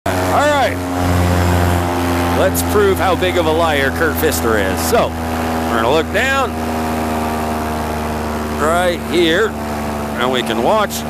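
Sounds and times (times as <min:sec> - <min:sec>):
paramotor engine and propeller drone: 0:00.1 - 0:11.0.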